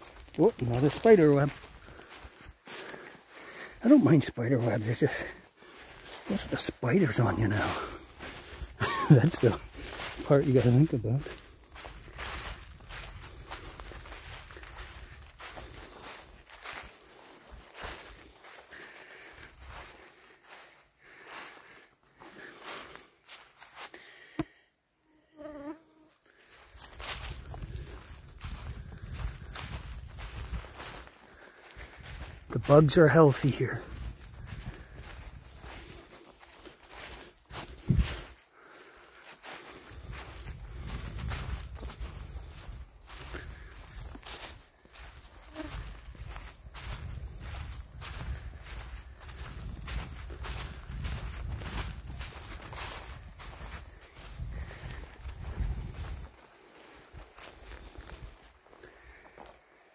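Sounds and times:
rustling of undergrowth: 0:00.0 - 0:24.8, 0:25.7 - 0:59.9
footsteps on forest trail: 0:00.0 - 0:24.9, 0:25.6 - 0:59.9.

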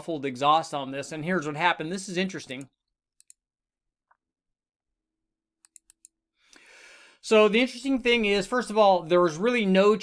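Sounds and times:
computer mouse clicks: 0:02.6 - 0:03.4, 0:05.6 - 0:06.2.

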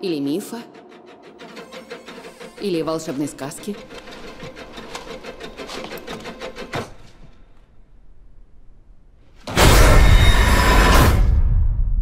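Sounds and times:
rapid clicking and scratching: 0:01.4 - 0:07.3.

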